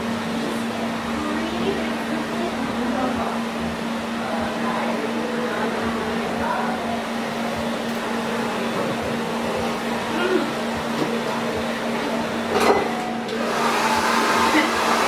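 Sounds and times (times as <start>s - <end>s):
machine hum: 0.0s - 15.0s
faint voices: 0.4s - 13.3s.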